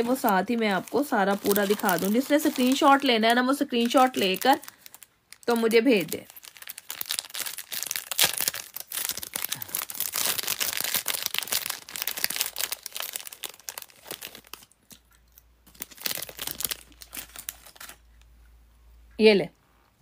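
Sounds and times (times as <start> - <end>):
packet rustling crackles: 0.0 - 18.2.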